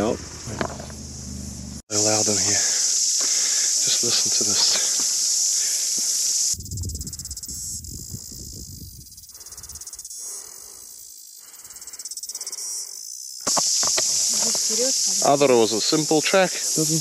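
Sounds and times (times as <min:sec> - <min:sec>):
insects buzzing: 0:00.0 - 0:17.0
pulsing insect song: 0:00.0 - 0:17.0.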